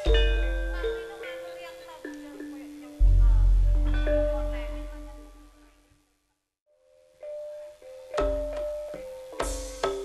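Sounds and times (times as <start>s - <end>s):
metallophone notes ringing: 0.0s - 5.7s
gamelan held ringing note: 3.0s - 5.7s.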